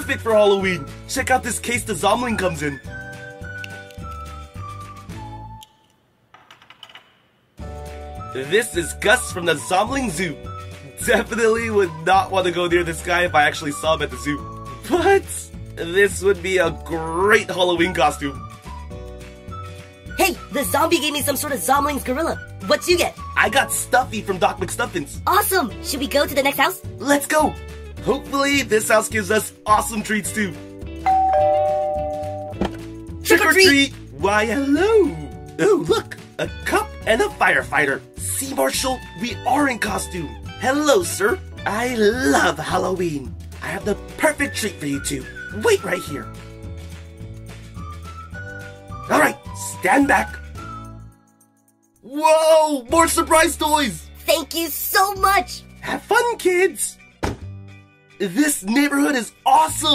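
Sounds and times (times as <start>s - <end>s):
background music: 0.0s - 6.9s, 7.6s - 59.9s
two-note doorbell chime: 31.1s - 32.6s.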